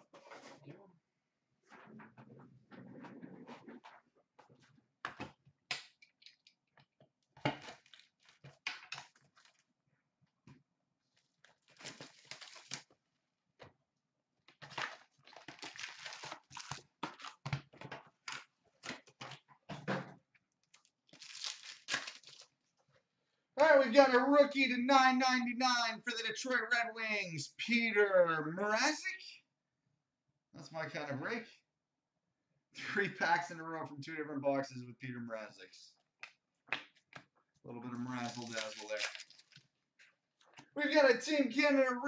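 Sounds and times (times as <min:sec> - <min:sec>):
foil packs ripping and crinkling: 0:11.5 - 0:12.9, 0:14.6 - 0:17.4, 0:20.8 - 0:22.5, 0:38.2 - 0:39.6.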